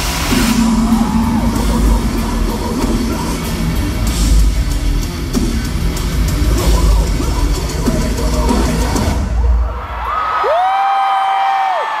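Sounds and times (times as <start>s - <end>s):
crowd yelling: 0.0s - 3.8s, 6.6s - 12.0s
heavy metal band playing live: 0.0s - 9.6s.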